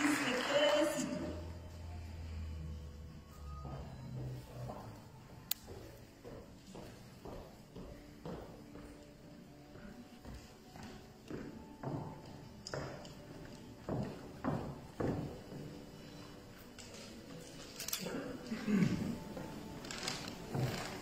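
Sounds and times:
heeled footsteps on wooden stage: 3.6s - 16.2s, 19.3s - 21.0s.

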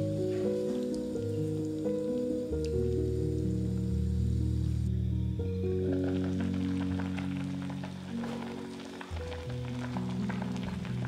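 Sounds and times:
background music: 0.0s - 11.0s
stew bubbling in a clay pot: 5.6s - 11.0s.

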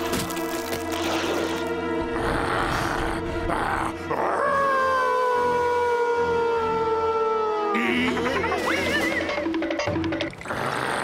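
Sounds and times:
dramatic score music: 0.0s - 11.0s
cartoon monster howl: 2.2s - 8.8s.

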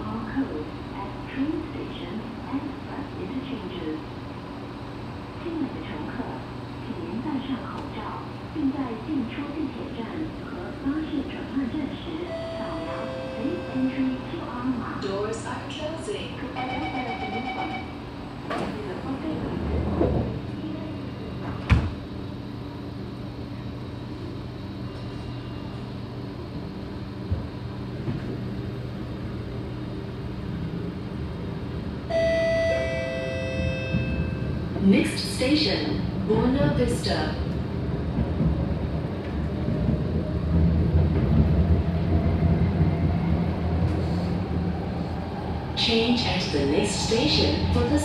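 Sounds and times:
train humming: 0.0s - 48.0s
warning beeps: 12.3s - 14.2s.

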